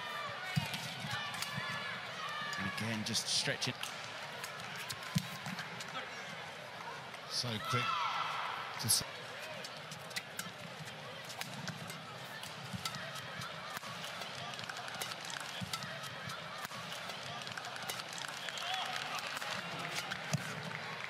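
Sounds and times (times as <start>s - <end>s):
crowd murmur: 8.4s - 21.0s.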